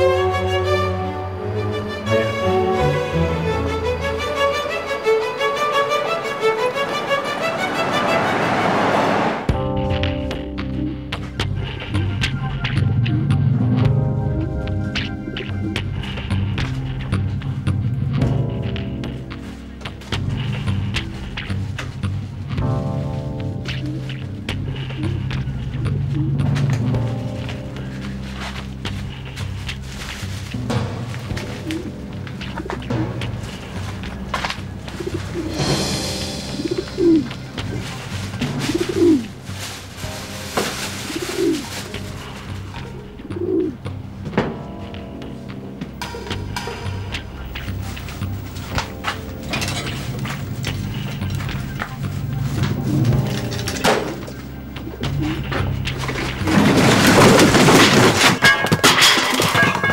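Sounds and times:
background music: 0:00.0 - 0:59.9
pigeons cooing: 0:10.8 - 0:17.2, 0:23.6 - 0:28.6, 0:29.9 - 0:35.8, 0:36.5 - 0:39.7, 0:40.7 - 0:44.0, 0:49.4 - 0:57.0.

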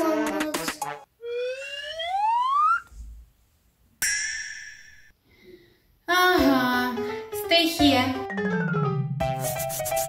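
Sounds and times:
rising slide whistle: 0:01.2 - 0:02.9.

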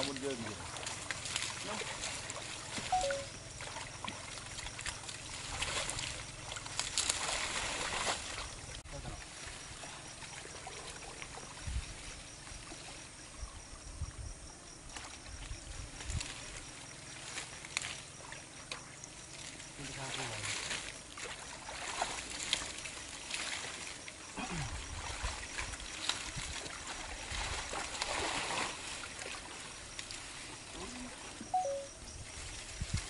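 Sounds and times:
muddy water sloshing and splashing: 0:00.0 - 0:13.4, 0:14.8 - 0:33.0
plant stems and leaves rustling: 0:04.9 - 0:08.5.

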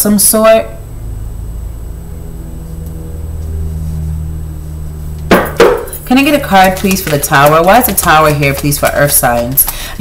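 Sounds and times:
low hum: 0:00.0 - 0:08.0
loud sharp knocks: 0:05.3 - 0:05.9.

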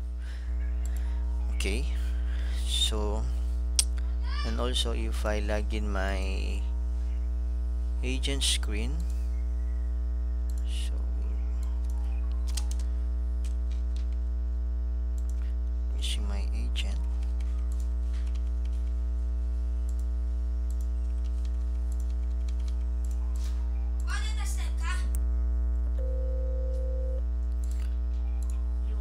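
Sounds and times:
electrical mains hum: 0:00.0 - 0:29.0.

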